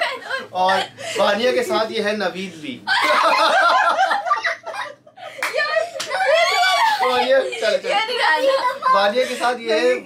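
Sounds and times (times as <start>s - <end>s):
people laughing and talking: 0.0s - 1.6s, 2.8s - 10.0s.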